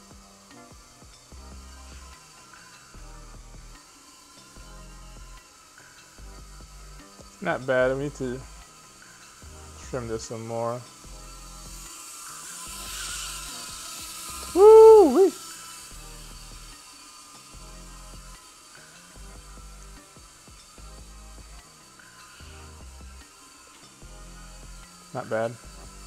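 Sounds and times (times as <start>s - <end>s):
background music with low beat: 0.0s - 26.0s
small drone motors whining: 0.0s - 26.0s
loud rising and falling tone: 14.3s - 15.4s.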